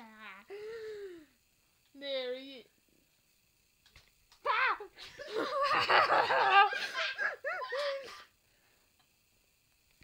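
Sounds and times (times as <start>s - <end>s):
high-pitched laughing: 4.5s - 8.2s.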